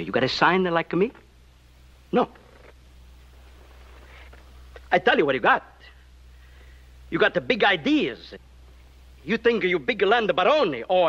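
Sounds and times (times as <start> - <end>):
man speaking: 0.0 - 1.2, 2.1 - 2.4, 4.9 - 6.0, 7.1 - 8.4, 9.2 - 11.0
faint low hum: 0.0 - 11.0.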